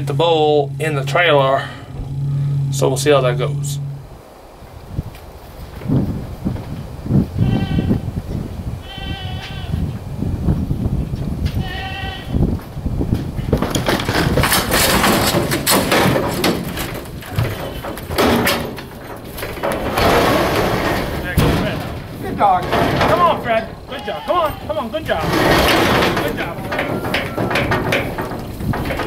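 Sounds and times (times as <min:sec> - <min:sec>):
low knocks: 0:00.0 - 0:04.2, 0:13.2 - 0:23.9, 0:24.6 - 0:29.0
goat bleating: 0:07.4 - 0:08.0, 0:08.8 - 0:09.8, 0:11.6 - 0:12.4, 0:23.5 - 0:25.2
metal clattering and banging: 0:13.2 - 0:29.0.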